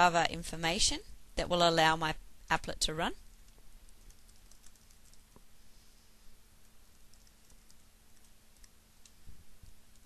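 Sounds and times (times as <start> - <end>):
keyboard typing: 3.3 - 5.4, 6.9 - 9.2.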